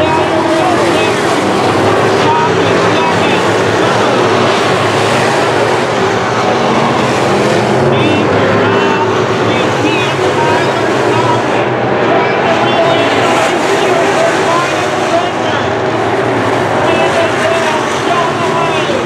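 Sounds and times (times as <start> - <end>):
race car engines droning: 0.0 - 19.0.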